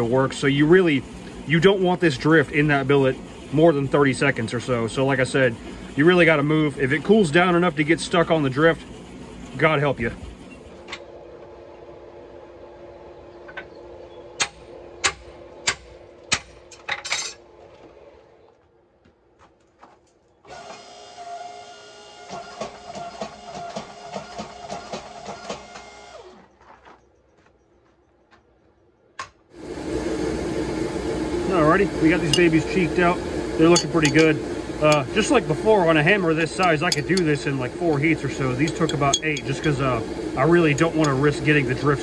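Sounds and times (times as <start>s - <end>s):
machine hum: 0.0s - 19.6s, 20.2s - 42.0s.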